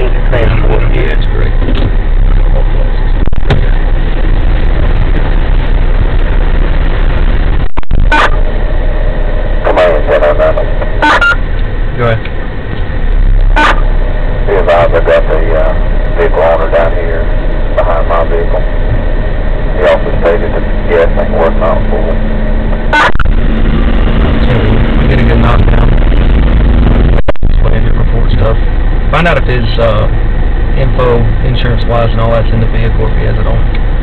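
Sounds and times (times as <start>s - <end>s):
indistinct voices: 0.0s - 3.8s, 8.2s - 12.3s, 13.2s - 33.6s
fire truck engines idling: 8.4s - 27.2s, 27.8s - 34.0s.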